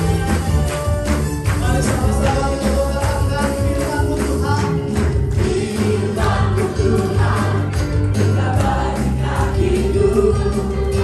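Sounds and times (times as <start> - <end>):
band accompaniment: 0.0 - 11.0
congregation singing: 1.6 - 11.0
singers on microphones: 1.6 - 11.0.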